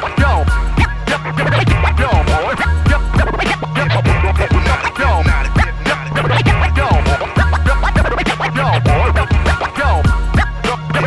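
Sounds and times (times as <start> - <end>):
hip hop beat with bass line: 0.0 - 11.0
turntable scratching: 0.0 - 11.0.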